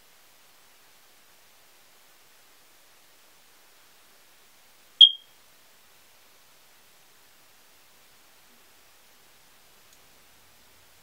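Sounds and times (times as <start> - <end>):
high-pitched electronic beep: 5.0 - 5.2.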